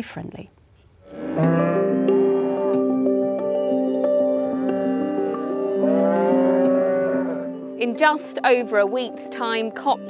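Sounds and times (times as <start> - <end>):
cow mooing: 1.0 - 2.8, 4.8 - 7.8
soft background music: 1.2 - 10.0.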